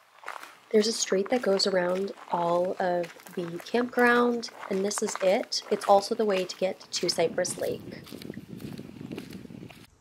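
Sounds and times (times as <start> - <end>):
footsteps on gravel: 0.0 - 9.9.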